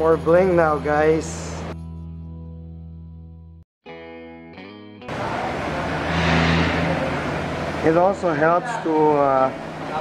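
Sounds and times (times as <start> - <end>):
guitar music: 1.6 - 7.8
workshop low hum: 5.1 - 10.0.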